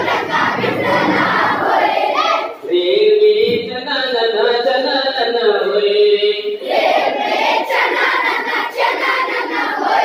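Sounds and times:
children singing together: 0.0s - 2.7s, 6.5s - 10.0s.

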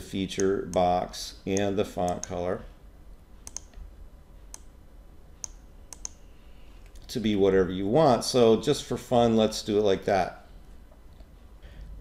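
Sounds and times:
computer mouse clicking: 3.4s - 3.9s, 5.4s - 6.2s.

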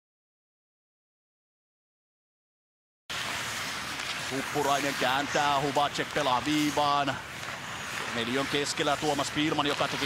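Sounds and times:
arena ambience hiss: 3.1s - 10.0s.

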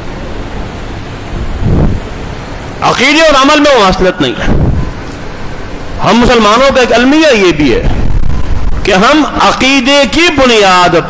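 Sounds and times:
low rush: 0.0s - 2.8s
steady rushing noise: 0.0s - 11.0s.

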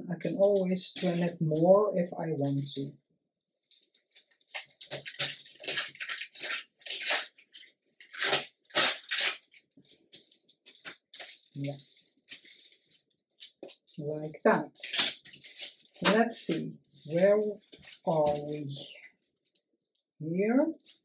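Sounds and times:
paper tearing along ruler: 5.2s - 7.4s, 8.1s - 9.6s.

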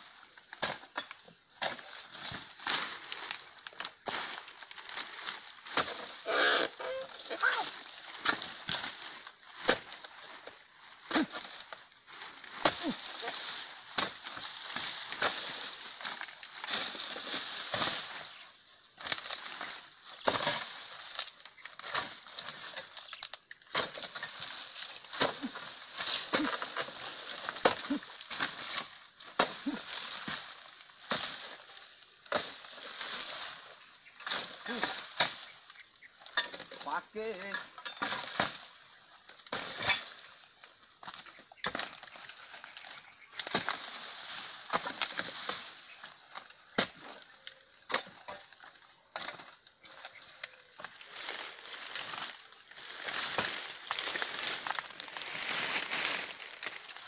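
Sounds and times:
fronds rustling and crackling: 0.0s - 57.0s.

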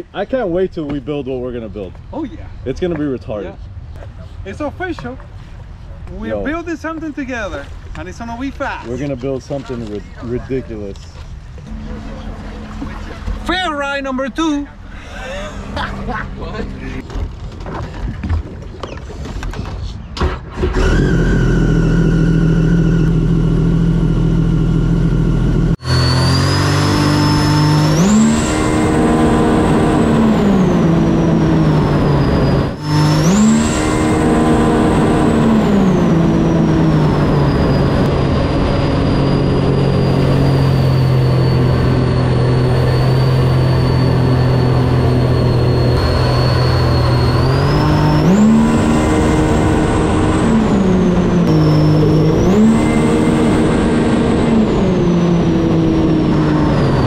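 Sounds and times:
jet ski engine accelerating: 8.2s - 17.0s, 20.6s - 57.0s
supercharger whine: 11.3s - 17.1s, 20.6s - 57.0s.

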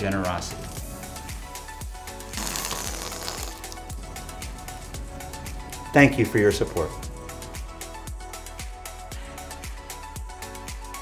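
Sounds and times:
background music with a beat: 0.0s - 11.0s
air hissing out of balloon: 2.1s - 4.4s.

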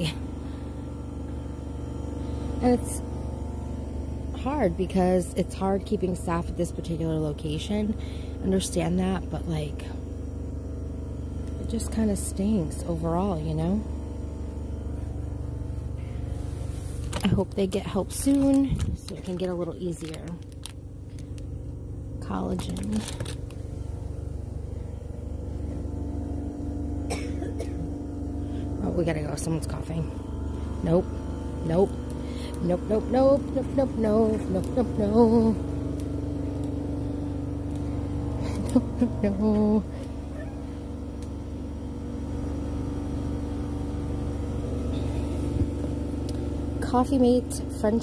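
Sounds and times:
store background hum and rumble: 0.0s - 48.0s
plastic packet crinkling: 17.0s - 21.6s, 22.4s - 23.7s.

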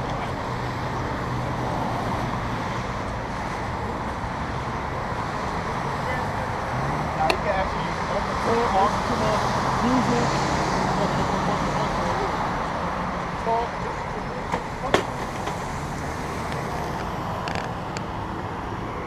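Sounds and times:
road traffic: 0.0s - 19.0s.

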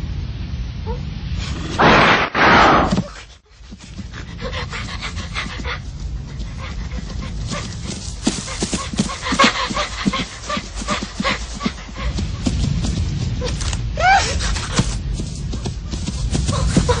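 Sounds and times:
animal panting rapidly: 3.5s - 13.7s, 14.4s - 17.0s.

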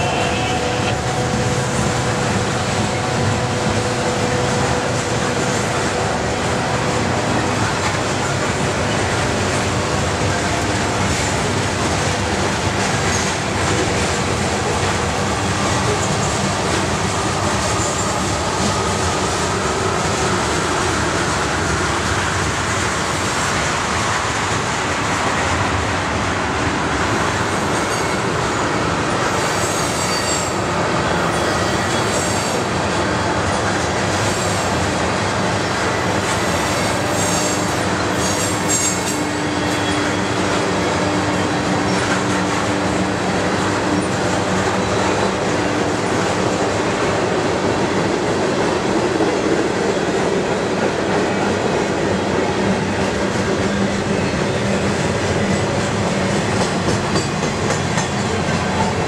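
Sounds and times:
train wheels rumbling on rail: 0.0s - 59.0s
high wheel squeals: 29.4s - 32.6s, 36.4s - 41.3s.

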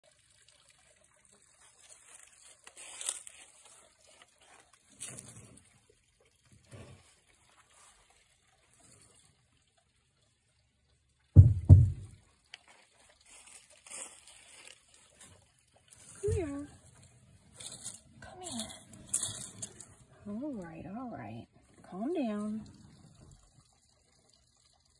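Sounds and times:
dry twigs and leaves crackling: 1.8s - 5.3s, 13.2s - 20.5s
loud low thump: 11.4s - 12.1s.

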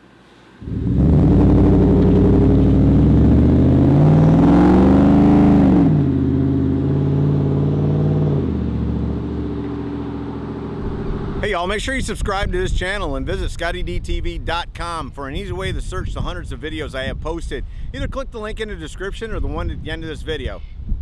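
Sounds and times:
truck engine accelerating: 0.6s - 11.6s.

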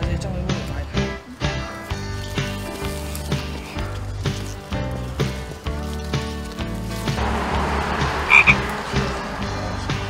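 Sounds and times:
frog croaking: 7.2s - 8.8s.

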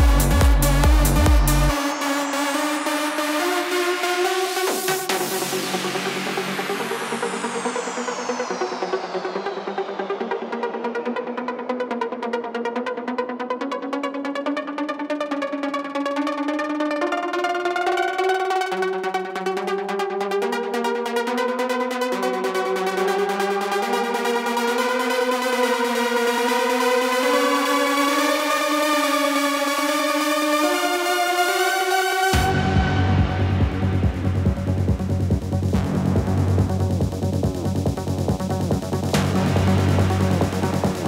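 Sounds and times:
synth melody: 0.0s - 5.4s.

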